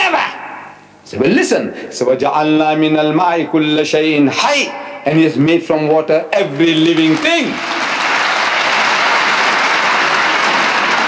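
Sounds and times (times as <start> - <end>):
large audience applauding: 6.7 - 11.0.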